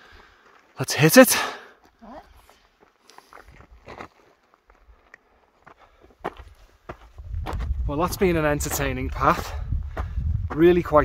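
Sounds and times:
footsteps on stony path: 0:00.0 - 0:00.8, 0:01.7 - 0:11.0.

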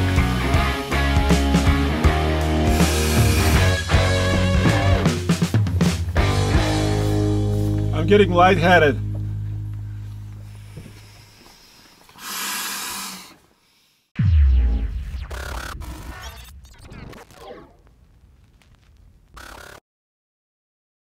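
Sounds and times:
deep boom dropping in pitch: 0:02.7 - 0:06.4, 0:14.2 - 0:18.9
swoosh: 0:14.2 - 0:18.5
glitchy effects: 0:14.2 - 0:19.8.

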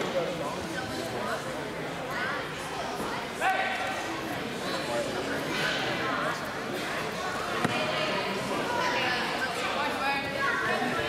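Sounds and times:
indistinct chatter of voices: 0:00.0 - 0:11.0.

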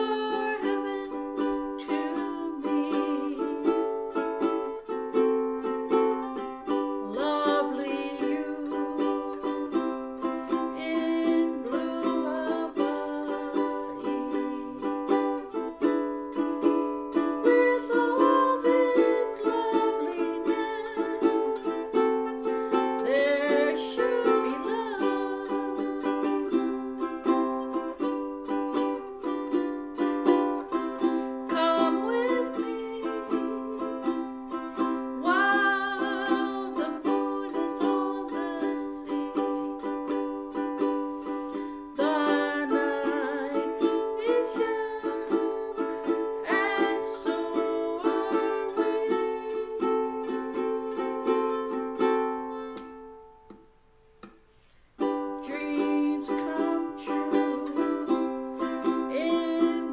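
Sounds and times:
woman singing: 0:00.0 - 0:52.2, 0:55.0 - 0:59.9
ukulele strummed chords: 0:00.0 - 0:59.9.

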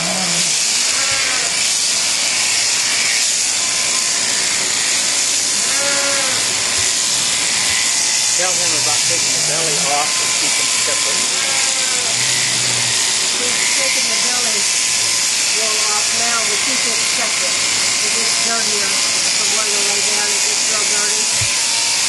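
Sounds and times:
electric shearing handpiece running: 0:00.0 - 0:22.0.

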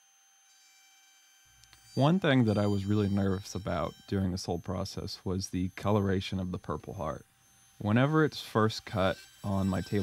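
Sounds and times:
thin steady hum: 0:00.0 - 0:10.0.

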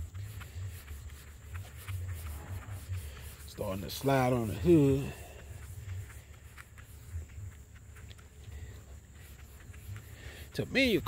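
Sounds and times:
applicator pad rubbing wax on car: 0:00.0 - 0:11.0.

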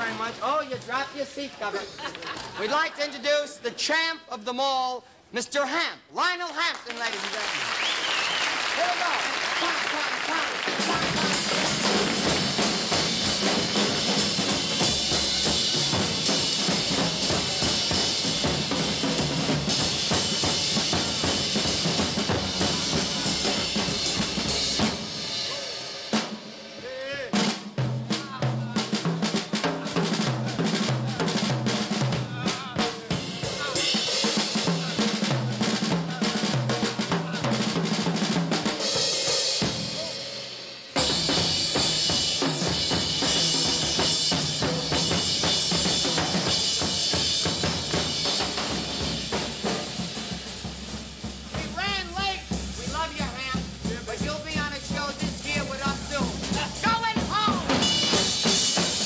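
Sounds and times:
drum kit solo: 0:00.0 - 0:01.8, 0:08.8 - 0:59.0.

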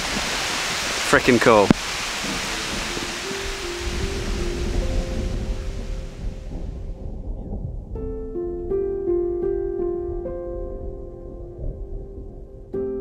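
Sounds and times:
steady rain hissing: 0:00.0 - 0:13.0
soft background music: 0:02.3 - 0:13.0.

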